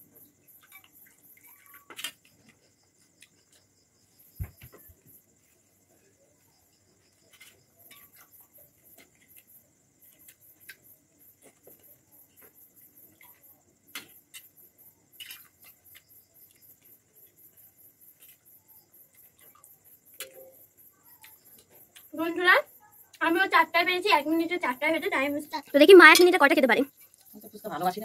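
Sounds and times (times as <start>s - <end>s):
crickets chirping: 0.0s - 28.0s.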